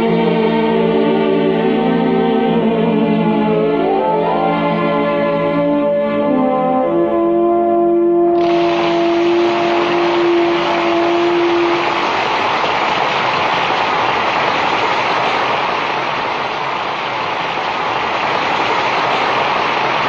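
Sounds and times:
loud steady rushing noise: 8.4s - 20.0s.

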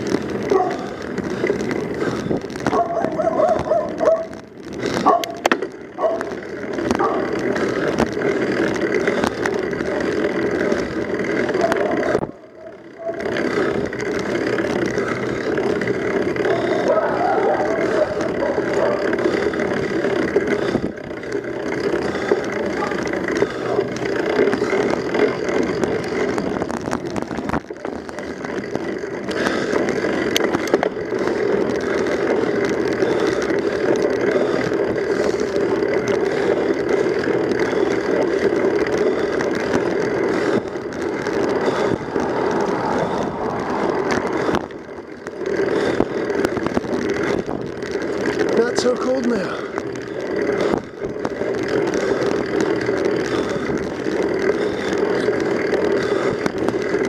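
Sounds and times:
bicycle tyres on asphalt: 0.0s - 57.0s
wind rushing over microphone: 41.5s - 44.9s.

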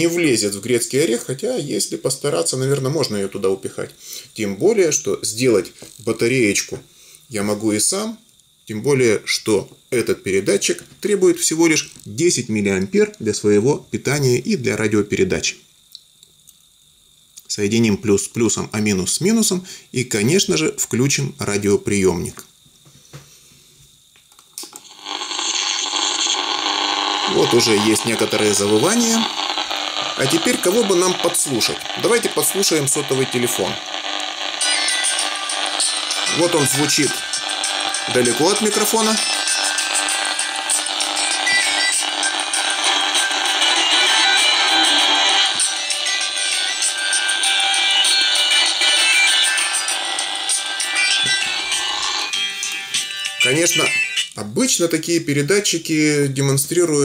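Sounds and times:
radio static hiss: 0.0s - 15.7s, 24.6s - 57.0s.

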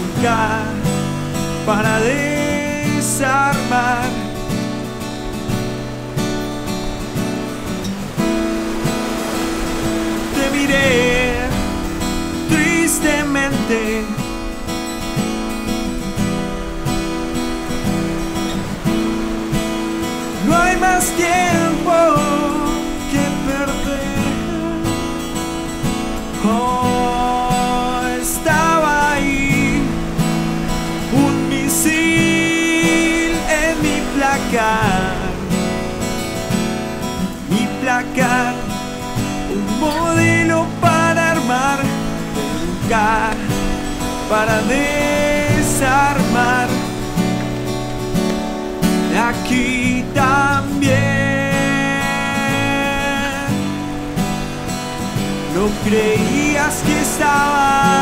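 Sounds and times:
acoustic guitar strumming: 0.0s - 58.0s
person singing long notes: 8.7s - 14.6s, 19.2s - 25.3s, 26.4s - 35.9s, 37.3s - 47.2s, 49.1s - 54.1s, 55.5s - 58.0s.

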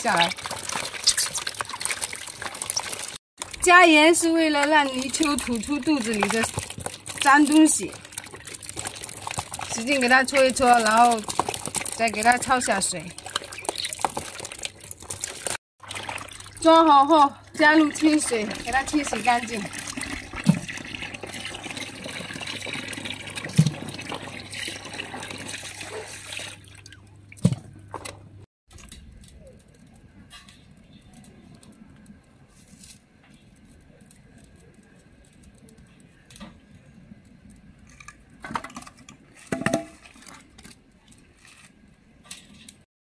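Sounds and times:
tap water running into basin: 0.0s - 27.5s.

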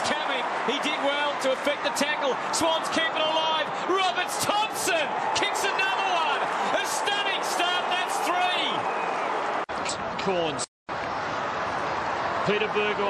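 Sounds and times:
crowd shouts: 0.0s - 9.7s, 10.9s - 13.0s
stadium crowd cheering: 0.0s - 13.0s.

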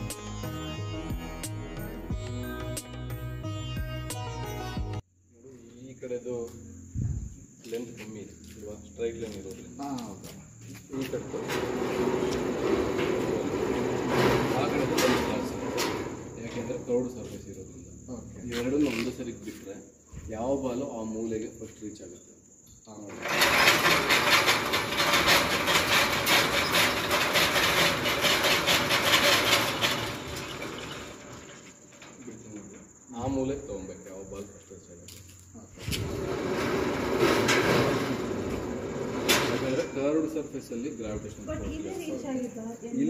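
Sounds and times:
high-pitched insect trill: 5.0s - 12.4s, 16.2s - 23.7s, 29.6s - 36.2s, 39.6s - 43.0s
ball rolling on metal track: 11.0s - 17.2s, 23.1s - 33.5s, 36.0s - 41.1s.

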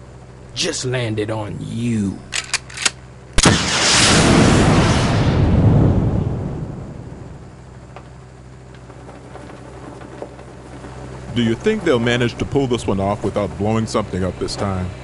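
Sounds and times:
quick clicks: 2.3s - 3.0s
ray-gun crack: 2.3s - 4.3s
long rushing blast: 3.4s - 7.7s.

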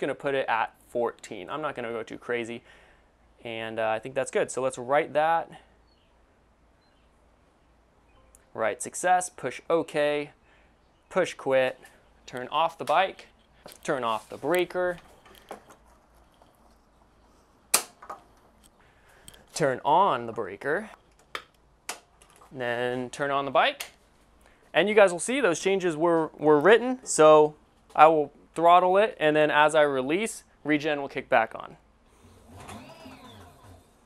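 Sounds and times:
electric motor whining: 32.1s - 34.0s.

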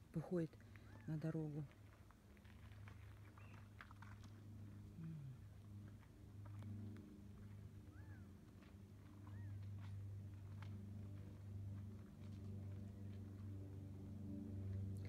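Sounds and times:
faint low hum: 0.0s - 15.0s.

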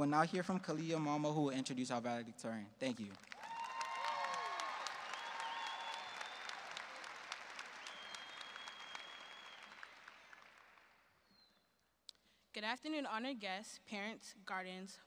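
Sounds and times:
audience clapping and cheering: 2.9s - 11.2s.

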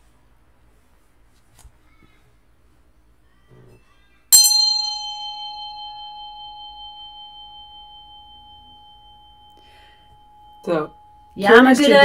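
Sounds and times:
bell ringing: 4.4s - 12.0s.

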